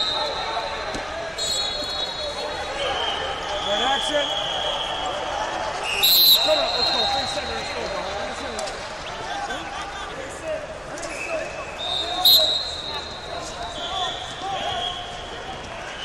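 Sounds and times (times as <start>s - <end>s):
sharp whistle blast: 0.0s - 0.5s, 1.4s - 5.1s, 5.9s - 7.8s, 11.2s - 15.1s
high-pitched whistle tones: 0.0s - 5.1s, 5.8s - 7.9s, 11.1s - 15.2s
spectators chattering and calling: 0.0s - 16.0s.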